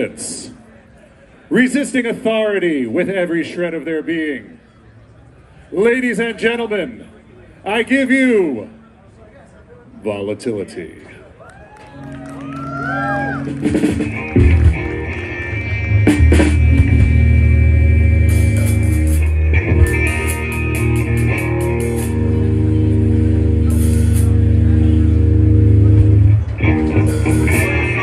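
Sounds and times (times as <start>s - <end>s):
electric guitar: 11.7s - 28.0s
bass guitar: 11.9s - 28.0s
drum kit: 13.4s - 28.0s.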